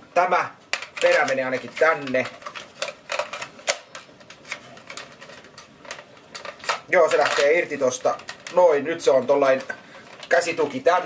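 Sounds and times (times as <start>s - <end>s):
plastic toy parts clicking: 0.7s - 8.6s.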